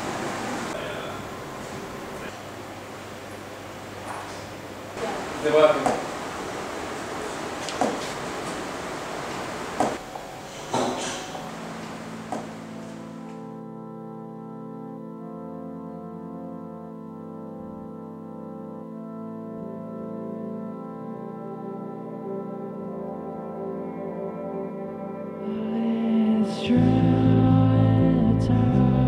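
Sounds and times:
noisy hiss: 0:00.0 - 0:13.4
keyboard playing organ-like chords: 0:00.0 - 0:29.0
sharp knocks: 0:05.8 - 0:06.2, 0:07.6 - 0:08.6, 0:09.8 - 0:10.0, 0:10.7 - 0:11.4, 0:12.3 - 0:12.6.

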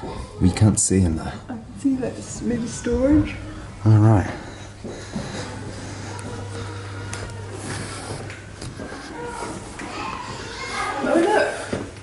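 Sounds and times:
faint indistinct voices: 0:00.0 - 0:12.0
steady low hum: 0:00.3 - 0:10.5.

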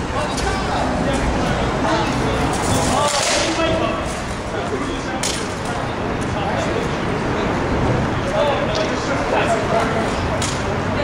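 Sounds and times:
people talking: 0:00.0 - 0:11.0
steady background noise: 0:00.0 - 0:11.0.

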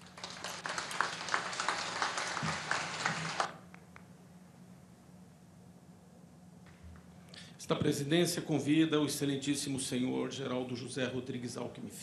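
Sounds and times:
audience applause: 0:00.0 - 0:03.6.

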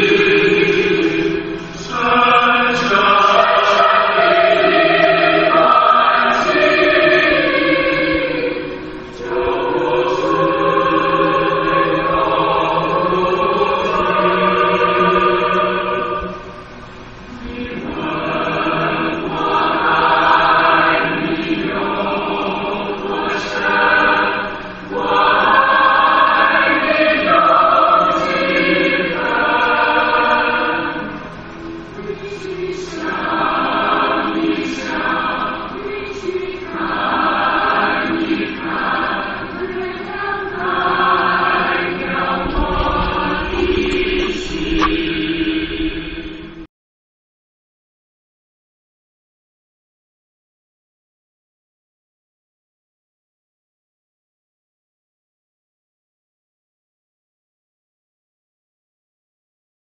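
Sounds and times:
choir singing slow song: 0:00.0 - 0:46.7.

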